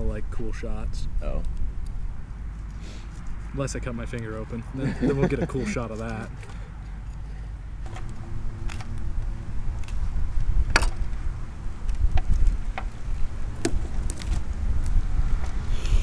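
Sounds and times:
steady low rumble: 3.3 - 16.0.

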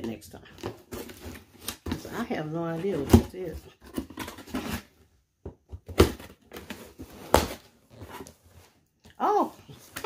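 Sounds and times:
cardboard box rustling and scraping: 6.1 - 8.8.

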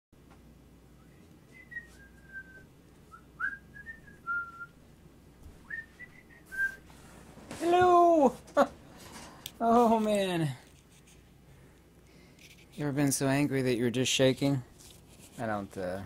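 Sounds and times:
person whistling a tune: 1.0 - 4.8, 5.6 - 6.8.

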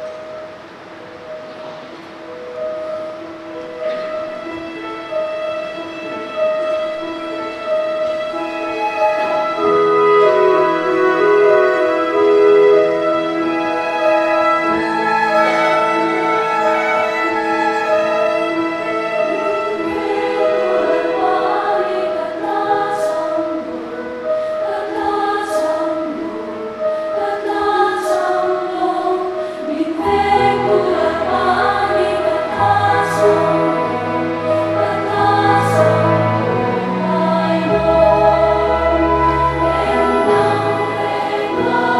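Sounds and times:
slow sustained church chords: 0.0 - 41.9
mixed choir singing: 4.1 - 41.9.

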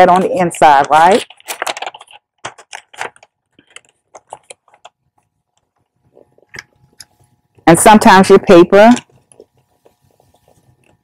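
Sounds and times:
wrapping paper crinkling: 0.0 - 7.4.

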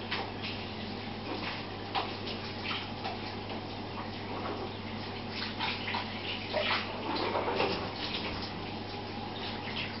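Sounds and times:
aquarium water trickling and splashing: 0.0 - 10.0.

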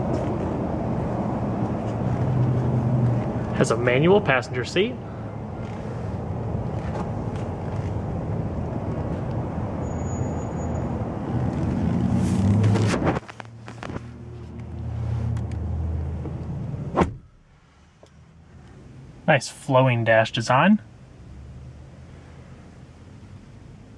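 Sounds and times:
steady rumbling background noise: 0.0 - 9.8
car door shutting thud: 16.9 - 17.3.

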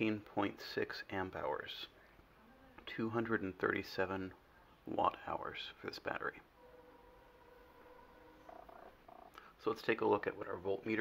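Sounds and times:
faint steady hum: 0.0 - 11.0
faint pulsing tone: 6.5 - 9.5.

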